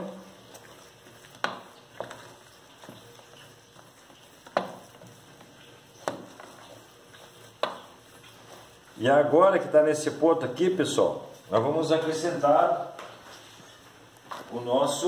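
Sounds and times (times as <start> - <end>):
mash squelching: 0.0 - 12.4.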